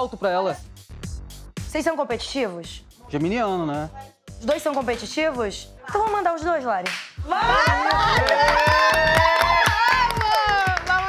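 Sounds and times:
music with steady beat: 0.0 - 11.0
people screaming and cheering: 7.2 - 11.0.

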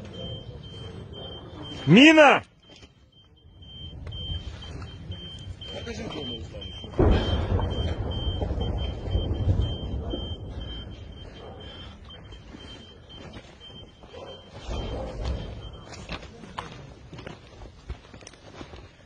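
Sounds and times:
high electronic beep pulsing: 0.0 - 16.2
low rumble: 6.6 - 12.8
sudden loud low rumble: 6.7 - 11.8.

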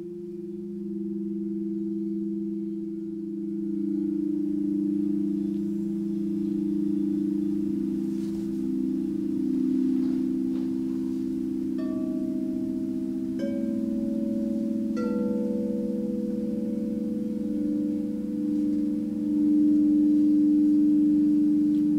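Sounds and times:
singing bowls ringing: 0.0 - 21.9.

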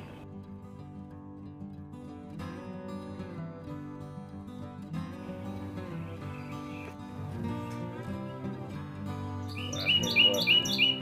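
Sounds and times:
acoustic guitar music: 0.0 - 11.0
bird chirping: 9.4 - 11.0.

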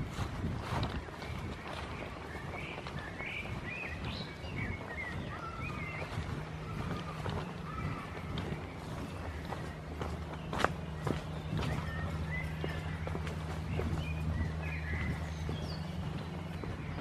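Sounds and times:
footsteps on dirt path: 0.0 - 17.0
steady low hum: 0.0 - 17.0.

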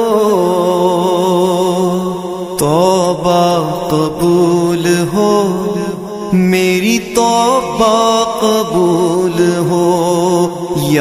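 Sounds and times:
man singing devotional song: 0.0 - 11.0.

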